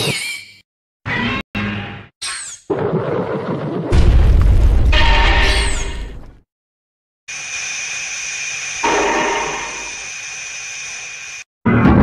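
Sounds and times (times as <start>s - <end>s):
steam-like hissing: 7.3s - 11.4s.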